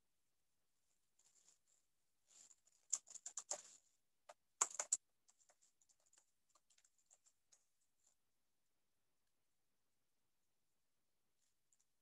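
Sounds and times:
typing on computer keyboard: 2.8 - 3.7, 4.3 - 7.6.

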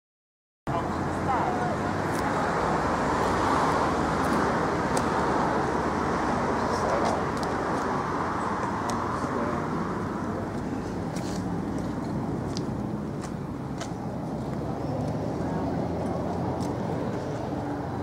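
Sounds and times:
city road traffic: 0.7 - 18.0.

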